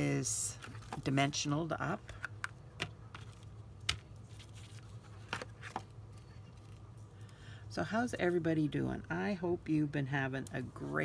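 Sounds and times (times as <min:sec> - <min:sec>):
steady low hum: 0:00.0 - 0:11.0
paper and plastic rustling: 0:00.5 - 0:01.2, 0:04.1 - 0:07.1.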